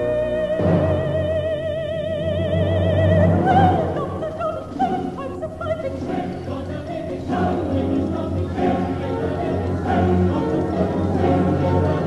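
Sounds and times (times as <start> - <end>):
choir singing with accompaniment: 0.0 - 12.0.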